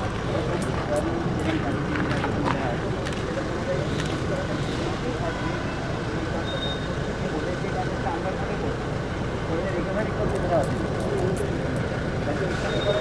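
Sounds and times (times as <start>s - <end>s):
people talking at once: 0.0s - 8.8s.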